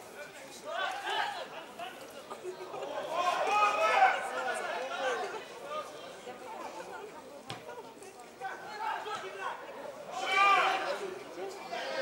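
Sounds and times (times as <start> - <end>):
men shouting and calling out: 2.9 - 5.4, 8.8 - 12.0.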